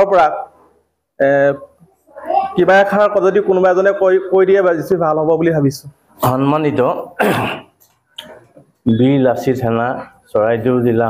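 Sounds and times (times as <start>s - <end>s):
man speaking: 0.0s - 1.8s, 2.6s - 7.5s, 8.8s - 11.0s
man clearing throat: 7.2s - 8.4s.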